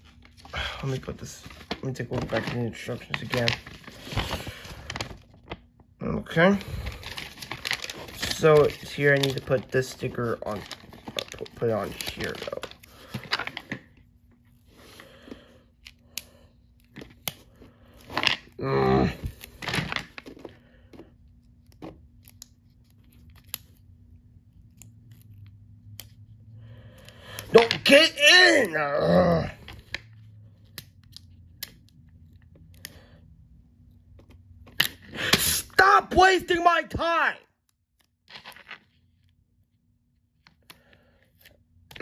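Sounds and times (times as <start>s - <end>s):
muttered voice: 18.6s - 19.3s, 27.5s - 29.6s, 35.6s - 37.4s.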